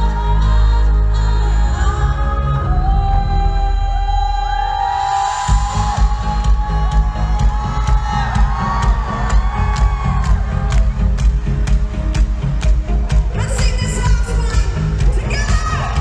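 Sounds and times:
woman singing: 0:00.0 - 0:09.9, 0:13.4 - 0:16.0
live pop band: 0:00.0 - 0:16.0
steady drum beat: 0:05.5 - 0:16.0.

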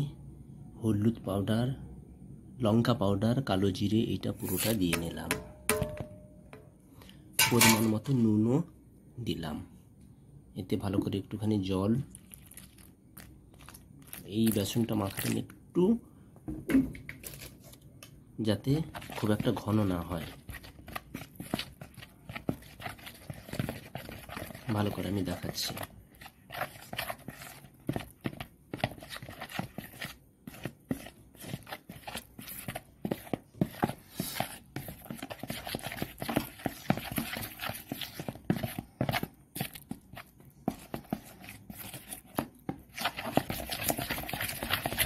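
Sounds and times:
wet scraping of batter: 0:03.8 - 0:05.9, 0:11.7 - 0:15.6, 0:17.1 - 0:45.0
metal spoon scraping a bowl: 0:04.4 - 0:06.3, 0:07.4 - 0:08.0.

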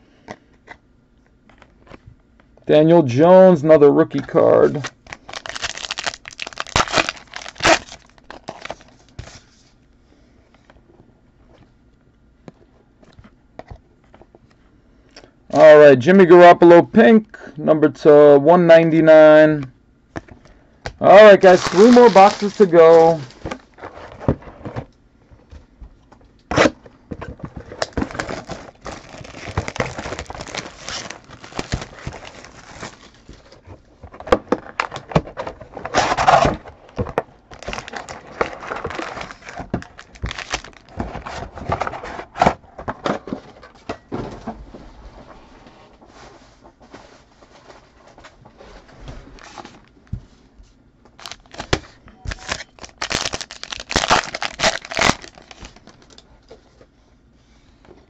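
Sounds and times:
foil packs tearing and crinkling: 0:04.6 - 0:09.2, 0:21.0 - 0:23.8, 0:27.7 - 0:33.6, 0:35.8 - 0:42.0, 0:51.2 - 0:56.2.

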